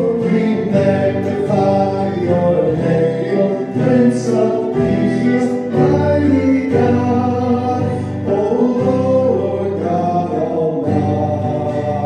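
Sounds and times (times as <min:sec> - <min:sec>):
acoustic guitar: 0:00.0 - 0:12.0
voices singing worship chorus: 0:00.0 - 0:12.0.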